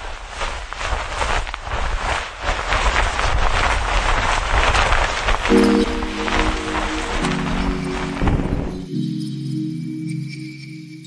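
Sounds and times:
wind buffeting microphone: 0:00.0 - 0:09.0.

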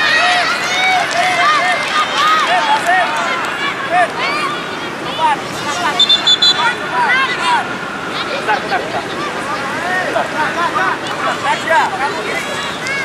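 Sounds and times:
children shouting: 0:00.0 - 0:13.0
referee's whistle blast: 0:05.9 - 0:06.8.

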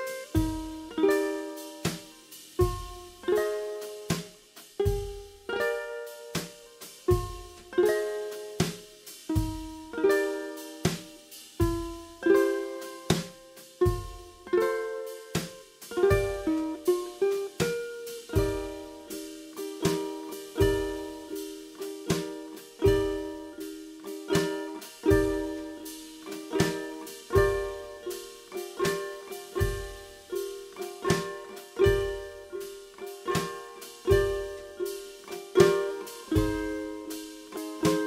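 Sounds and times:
steady drum beat: 0:00.0 - 0:38.0
ukulele strumming and picking: 0:00.0 - 0:38.0.

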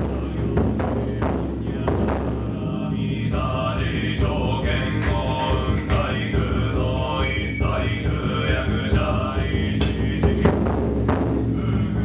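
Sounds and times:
mantra chanting: 0:00.0 - 0:10.7
deep drum strikes: 0:00.0 - 0:11.9.

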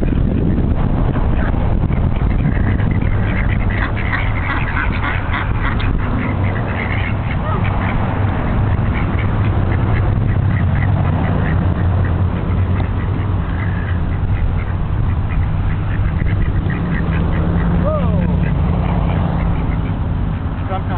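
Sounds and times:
low rumble: 0:00.0 - 0:20.6
ducks quacking: 0:01.2 - 0:20.9.

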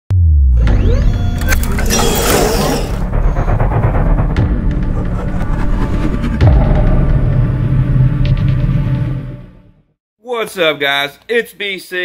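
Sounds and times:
deep bass boom: 0:00.1 - 0:01.8, 0:02.9 - 0:09.8.

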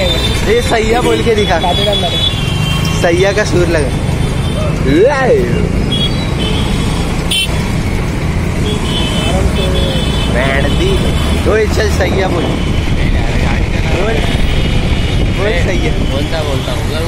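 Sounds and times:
car horns tooting: 0:00.0 - 0:07.8, 0:08.6 - 0:17.0
traffic rumble: 0:00.0 - 0:17.0.

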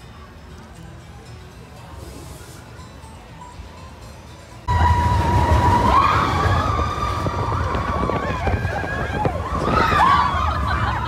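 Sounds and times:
roller coaster train rumbling: 0:04.6 - 0:11.0
riders screaming and whooping: 0:04.7 - 0:11.0.

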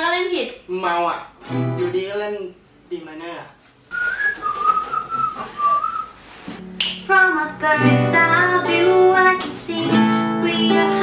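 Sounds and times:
acoustic guitar: 0:01.4 - 0:02.1, 0:03.9 - 0:11.0
person whistling a melody: 0:03.9 - 0:06.2
pop song: 0:06.9 - 0:11.0.

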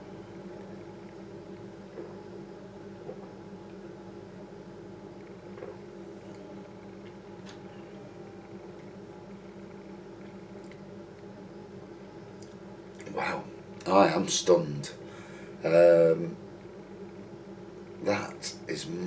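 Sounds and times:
low room hum: 0:00.0 - 0:19.0.

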